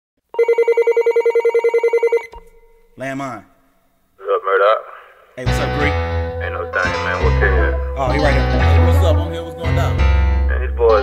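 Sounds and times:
telephone ringing: 0.4 - 2.4.

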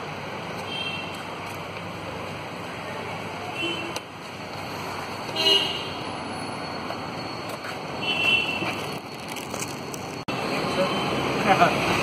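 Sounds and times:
street background noise: 0.0 - 12.0
vehicle horn toot: 5.3 - 6.0.

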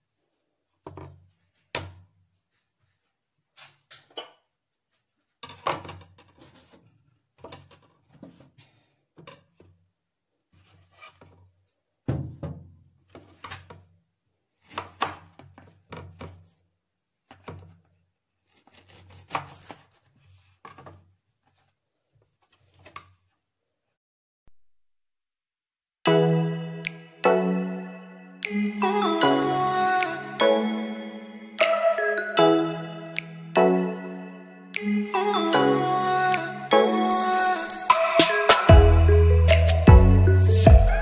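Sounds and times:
knife on plastic cutting board: 18.5 - 20.5.

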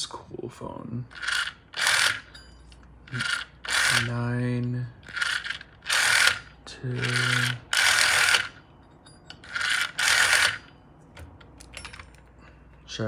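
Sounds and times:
rotary dial whirring: 1.1 - 8.7, 9.3 - 12.3.

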